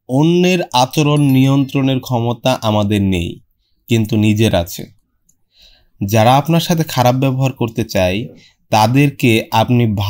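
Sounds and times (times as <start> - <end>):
narrator speaking: 0.1 - 5.0, 6.0 - 10.0.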